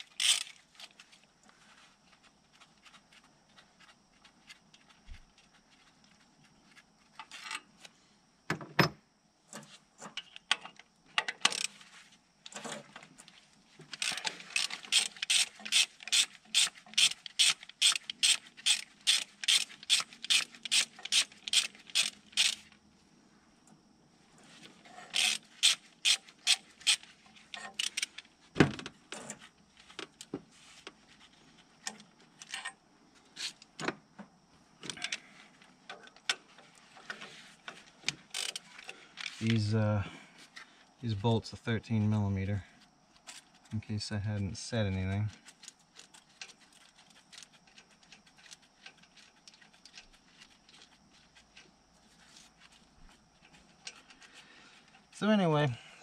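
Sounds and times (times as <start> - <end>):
socket ratchet clicking: 0.0 - 0.5, 14.0 - 22.7, 25.2 - 27.0.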